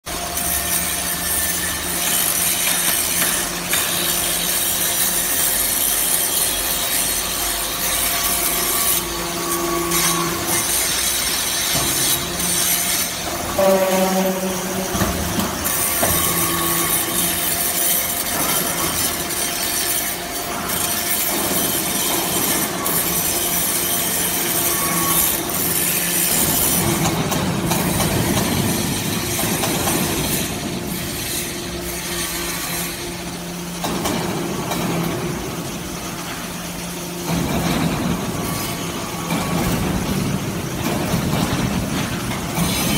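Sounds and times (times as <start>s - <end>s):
machine motor and pump hum: 0.1s - 42.9s.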